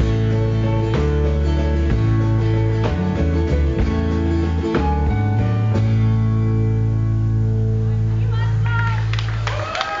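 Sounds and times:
people clapping: 0:08.6 - 0:10.0
audience whooping: 0:08.7 - 0:10.0.

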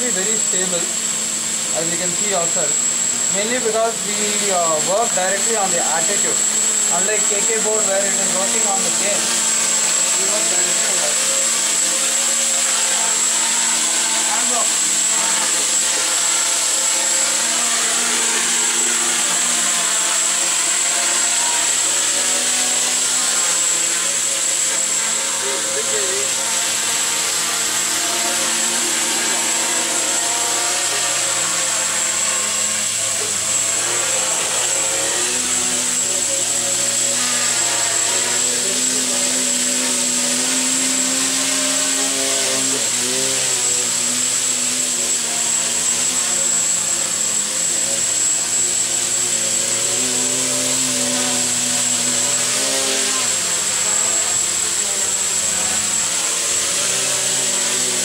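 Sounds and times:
drone propellers running: 0:00.0 - 0:58.0.

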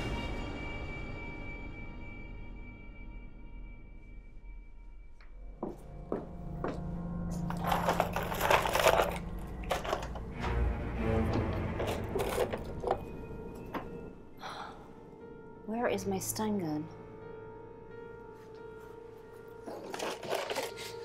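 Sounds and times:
background music: 0:00.0 - 0:21.0
objects clattering in a drawer: 0:07.5 - 0:10.6, 0:11.3 - 0:13.1, 0:19.7 - 0:21.0.

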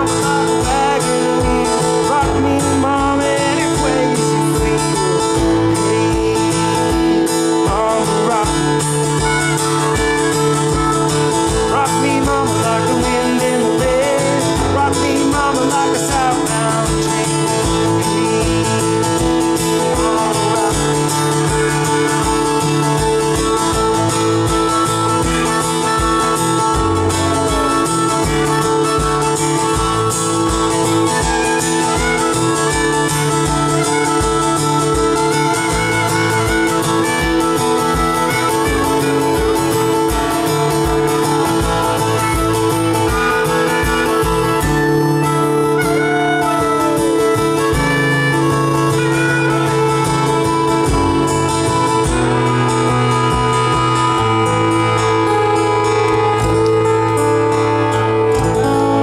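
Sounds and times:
acoustic guitar strumming: 0:00.0 - 0:59.0
harmonica solo: 0:00.0 - 0:59.0.

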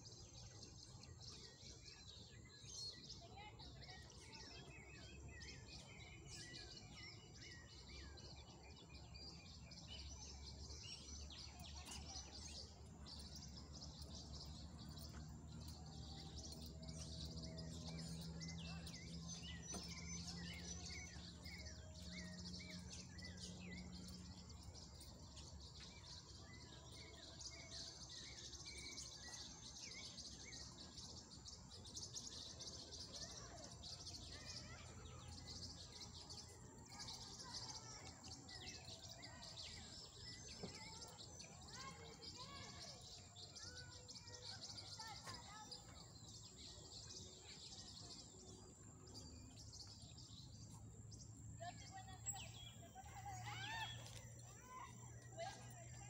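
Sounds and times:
small birds chirping: 0:00.0 - 0:56.0.

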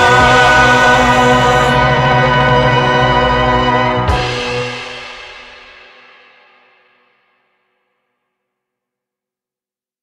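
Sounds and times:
orchestral chord ringing out: 0:00.0 - 0:05.6.

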